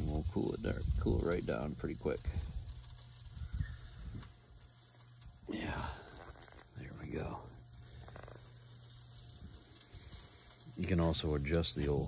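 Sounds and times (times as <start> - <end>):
wind buffeting microphone: 0.0 - 1.6, 2.2 - 4.4.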